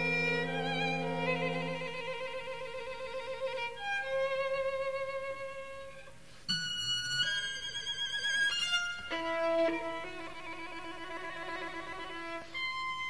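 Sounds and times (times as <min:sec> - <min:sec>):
chamber ensemble holding notes: 0:00.0 - 0:04.7
solo violin: 0:00.0 - 0:13.0.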